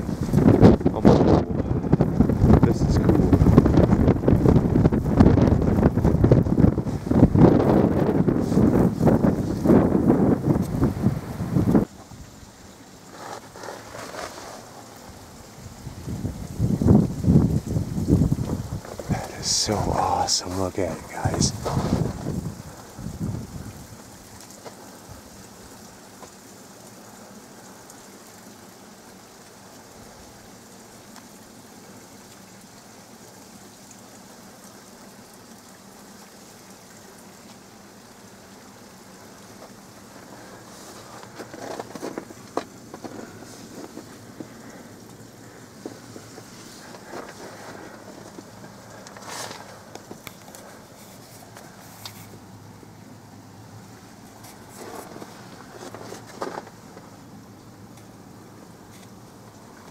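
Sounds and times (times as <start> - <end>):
short crunches and clicks: 39.6 - 45.2.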